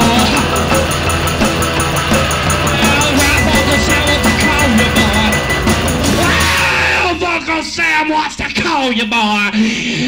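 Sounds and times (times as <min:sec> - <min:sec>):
punk rock band playing: 0:00.0 - 0:08.8
man yelling: 0:06.1 - 0:09.4.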